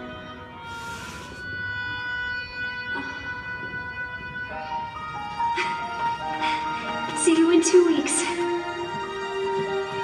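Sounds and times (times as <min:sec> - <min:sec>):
soft film score music: 0:00.0 - 0:10.0.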